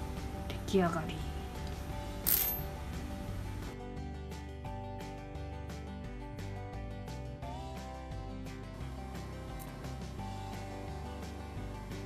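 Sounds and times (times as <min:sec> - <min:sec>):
background music: 0:00.0 - 0:12.0
metal needle clinking on wood: 0:02.2 - 0:02.7.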